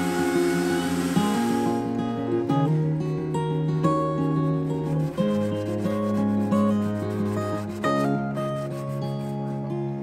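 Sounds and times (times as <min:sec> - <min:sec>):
sanding block rubbing wood: 0:00.0 - 0:01.8, 0:04.9 - 0:09.4
acoustic guitar music: 0:00.0 - 0:10.0.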